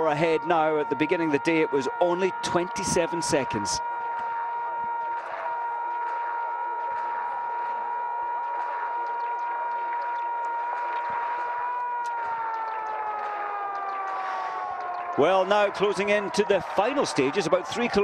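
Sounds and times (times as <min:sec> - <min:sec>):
siren-like pitched tone: 0:00.0 - 0:05.5.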